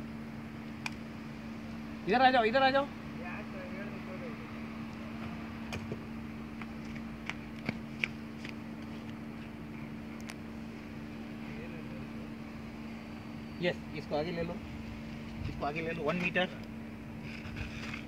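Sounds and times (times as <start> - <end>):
steady low two-pitch hum: 0.0 - 18.0.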